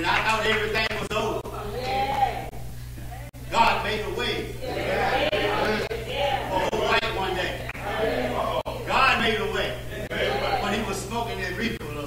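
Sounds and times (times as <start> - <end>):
man preaching in half-sung voice: 0.0 - 1.4, 3.5 - 4.6, 8.3 - 12.0.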